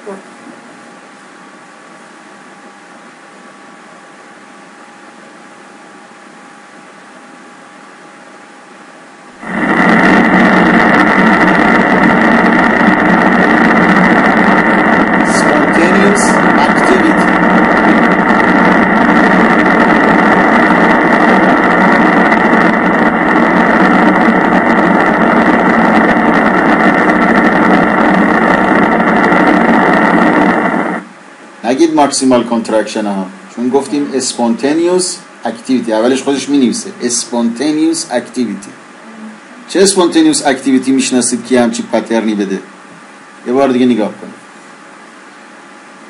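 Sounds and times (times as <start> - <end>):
dense electrical crackle from loudspeaker: 0.0 - 46.0.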